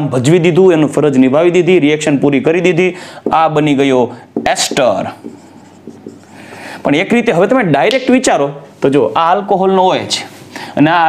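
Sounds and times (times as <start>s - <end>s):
marker scratching on whiteboard: 3.2s - 6.8s.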